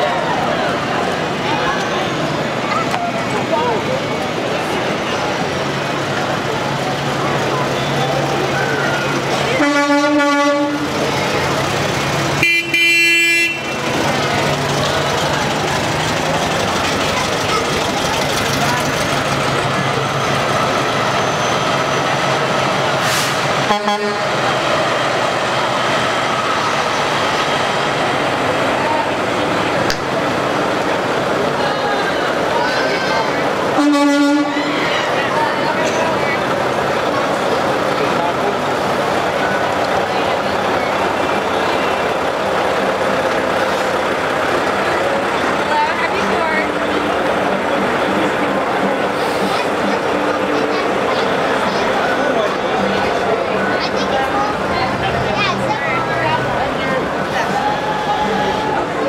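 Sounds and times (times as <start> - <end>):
engine running: 0.0 - 59.0
vehicle horn honking: 9.6 - 10.9, 12.4 - 14.0, 23.6 - 24.4, 33.8 - 34.8.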